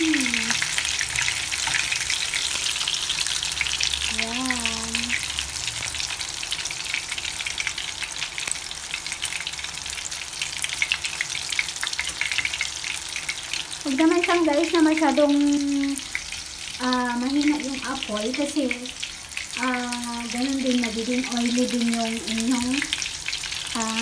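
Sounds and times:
spattering oil crackling: 0.0s - 6.0s, 10.4s - 24.0s
fish frying in hot oil: 0.0s - 24.0s.

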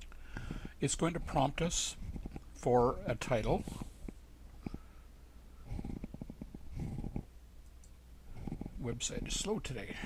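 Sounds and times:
low electrical hum: 0.0s - 10.0s
man's low creaky murmurs: 0.5s - 4.0s, 5.7s - 7.3s, 8.3s - 10.0s.

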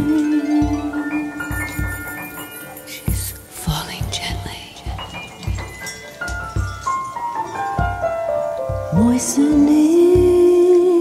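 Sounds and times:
hand drum beats: 0.0s - 11.0s
breathy whispery gliding sounds: 2.0s - 5.4s.

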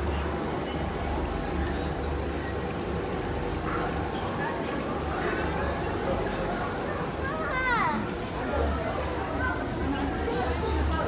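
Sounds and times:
chatter of many voices: 0.0s - 11.0s
child calling out: 7.2s - 8.0s.

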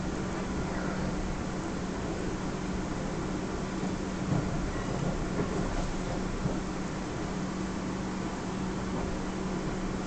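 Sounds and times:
constant low hum: 0.0s - 10.0s
train rumbling over tracks: 0.0s - 10.0s.

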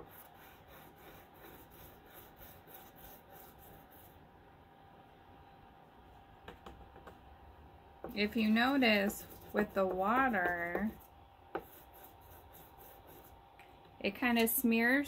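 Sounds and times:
chalk rubbing on paper: 0.0s - 4.2s, 8.2s - 11.0s, 11.6s - 13.4s.

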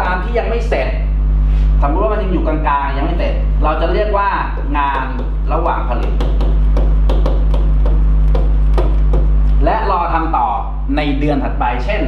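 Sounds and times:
steady low hum: 0.0s - 12.0s
pen tapping on writing board: 4.6s - 9.4s.

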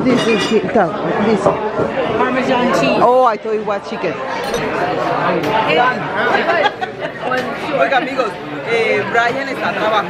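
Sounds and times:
chatter of overlapping voices: 0.0s - 10.0s.

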